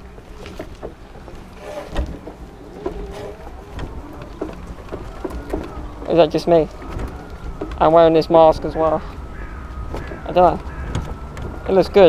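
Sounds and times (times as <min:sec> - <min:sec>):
faint knocks: 0:00.0 - 0:12.0
wind rumble on microphone: 0:00.0 - 0:12.0.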